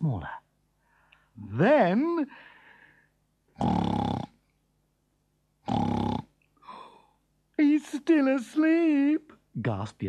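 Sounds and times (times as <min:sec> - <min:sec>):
person snoring: 0:03.6 - 0:04.4, 0:05.6 - 0:06.3.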